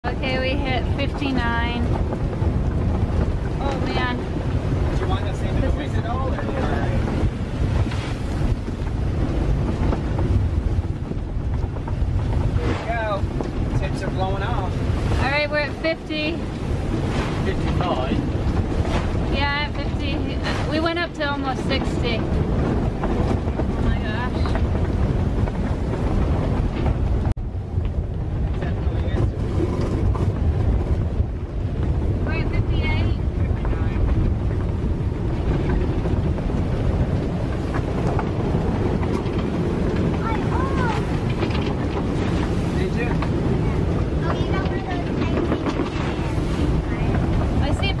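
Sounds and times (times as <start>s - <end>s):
strong wind rushing: 0.0s - 48.0s
wind buffeting on microphone: 0.0s - 48.0s.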